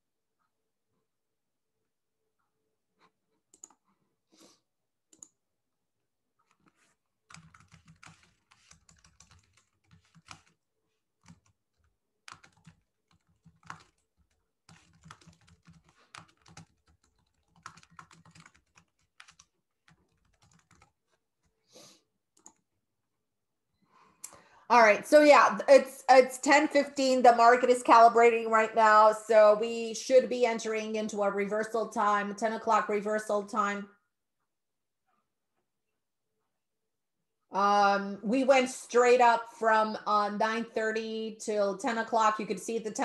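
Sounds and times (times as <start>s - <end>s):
typing on computer keyboard: 3.5s - 3.8s, 6.4s - 10.6s, 11.2s - 21.5s, 22.4s - 22.6s.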